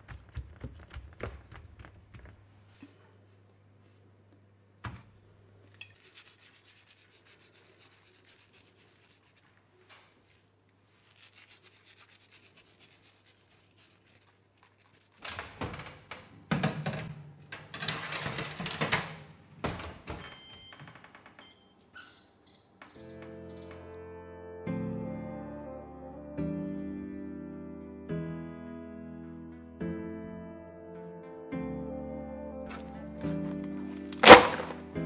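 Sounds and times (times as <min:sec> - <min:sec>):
dry herbs rustling: 0:06.0 - 0:15.2.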